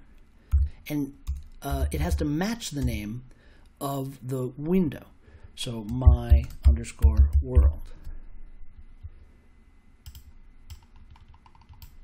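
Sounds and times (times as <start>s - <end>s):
keyboard typing: 0.5s - 3.0s, 5.8s - 7.8s, 10.0s - 12.0s.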